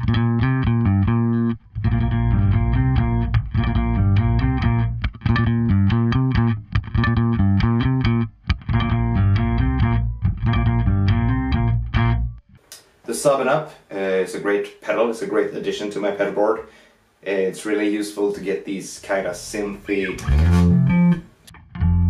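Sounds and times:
electric bass with octave effect: 0.0 - 12.6, 19.5 - 22.0.

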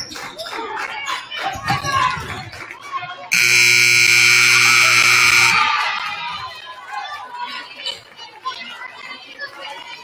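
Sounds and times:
crowd voices and chatter: 0.0 - 10.0
scoreboard horn buzzing: 3.3 - 5.7.

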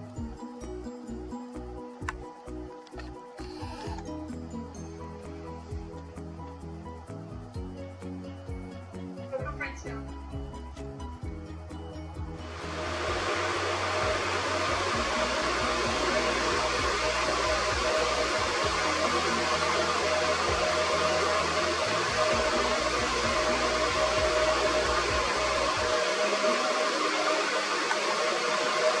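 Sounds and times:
noisy electronic music: 0.0 - 29.0.

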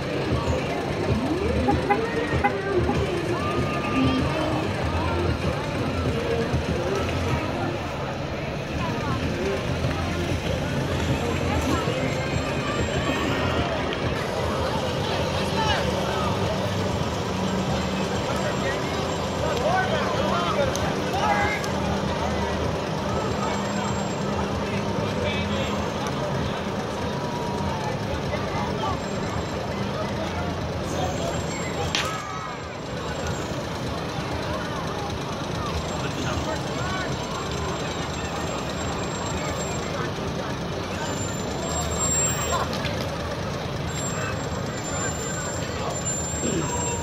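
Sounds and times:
street crowd chatter: 0.0 - 47.0
truck engine running: 0.0 - 47.0.

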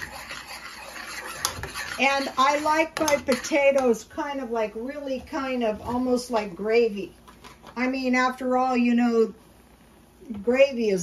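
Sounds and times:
spoon scraping saucepan: 0.0 - 4.1.

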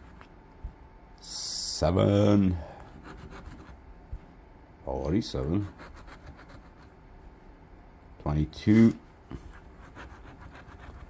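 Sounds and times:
coin scratching a ticket: 5.7 - 6.9, 9.8 - 11.0.

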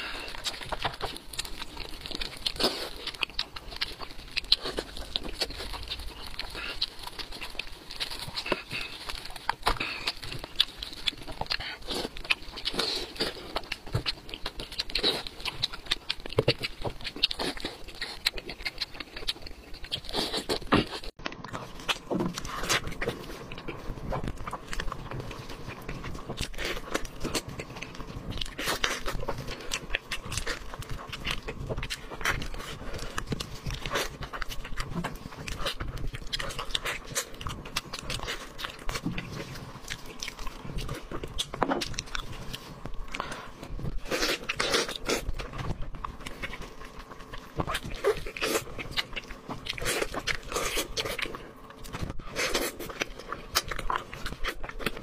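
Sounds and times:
chewing and lip smacks: 0.0 - 55.0.

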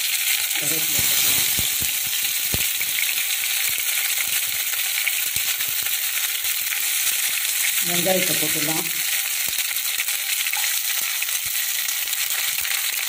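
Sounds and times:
hot oil sizzling: 0.0 - 13.0.

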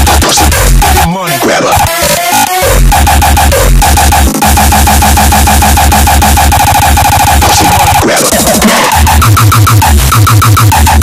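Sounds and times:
industrial hardcore electronic music: 0.0 - 11.0.

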